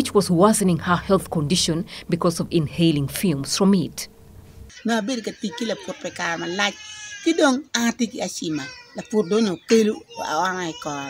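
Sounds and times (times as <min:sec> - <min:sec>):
elderly woman speaking: 0:00.0 - 0:04.1, 0:04.7 - 0:11.0.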